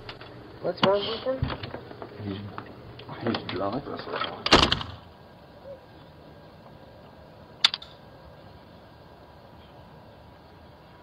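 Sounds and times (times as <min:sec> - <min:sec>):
faint hiss: 0:00.0 - 0:11.0
door and latch clattering: 0:03.3 - 0:05.0
sharp click: 0:07.6 - 0:08.0.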